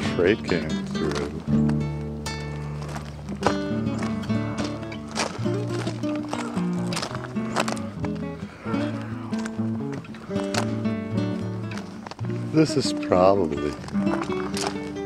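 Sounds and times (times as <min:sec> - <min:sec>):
held instrumental notes: 0:00.0 - 0:15.0.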